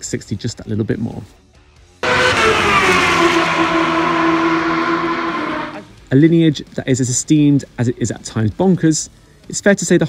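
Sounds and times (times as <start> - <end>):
motorcycle passing at high revs: 2.0 - 6.0.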